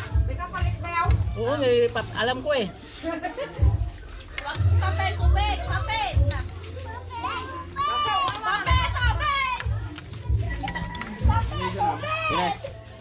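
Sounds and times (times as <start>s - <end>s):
children calling and shouting: 2.8s - 13.0s
music with repeating bass line: 8.7s - 12.5s.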